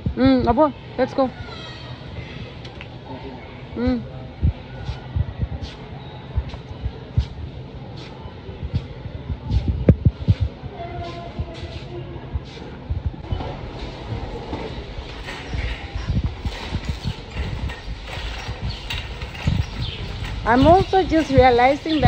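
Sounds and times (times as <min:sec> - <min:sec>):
shopping cart rattling: 0:13.3 - 0:22.0.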